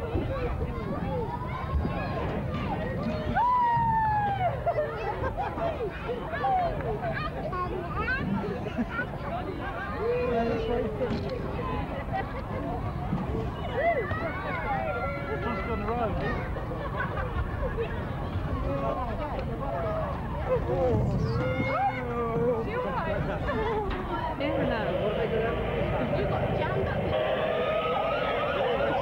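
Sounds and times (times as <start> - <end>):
children calling and chattering: 0.0 - 29.0
low rumble: 24.3 - 29.0
rising and falling squeals: 24.4 - 29.0.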